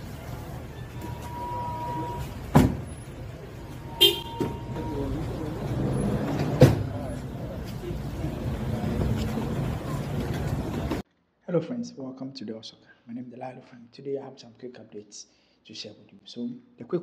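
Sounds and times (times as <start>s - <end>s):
voices: 0.0s - 11.0s
car doors shutting: 2.4s - 3.0s.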